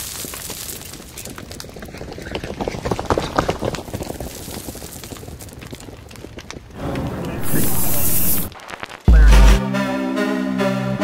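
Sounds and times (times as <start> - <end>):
crackling with clicks: 0.0 - 9.6
loud static hiss burst: 7.2 - 9.6.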